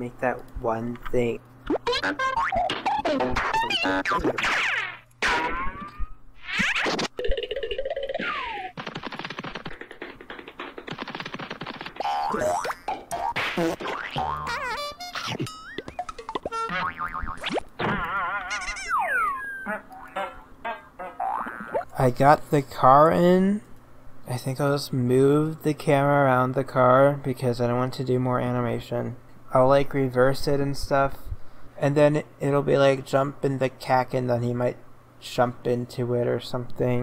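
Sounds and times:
high-pitched sped-up voice chatter: 2.9s - 4.4s.

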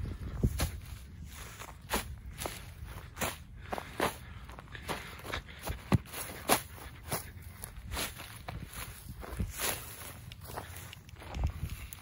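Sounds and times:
footsteps in dry grass: 0.0s - 12.0s.

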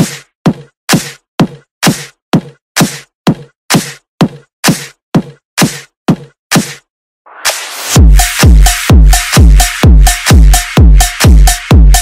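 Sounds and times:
kick drum beat: 0.0s - 6.8s, 8.0s - 12.0s.

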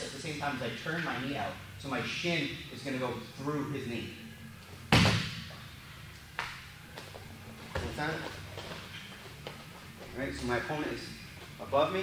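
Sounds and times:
man speaking: 10.1s - 12.0s.

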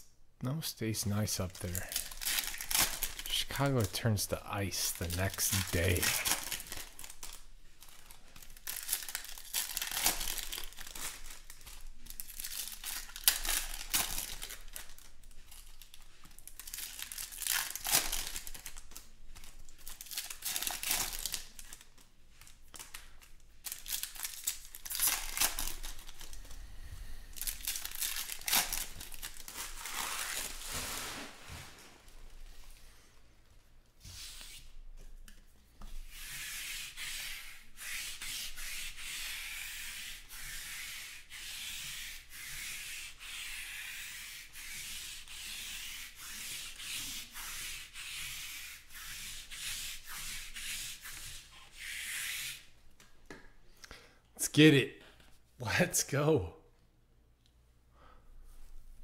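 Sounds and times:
foil wrappers crinkling: 1.1s - 26.6s, 27.3s - 32.4s
cards rubbing against each other: 3.3s - 6.7s, 34.0s - 34.7s, 36.1s - 52.7s.

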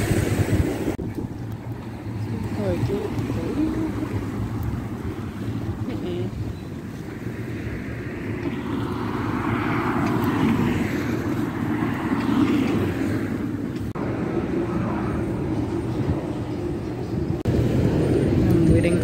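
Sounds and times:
traffic rumble: 0.0s - 19.0s.

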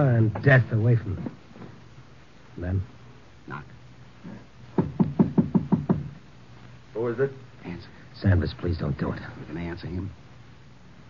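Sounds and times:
knocking on a door: 4.7s - 6.2s.

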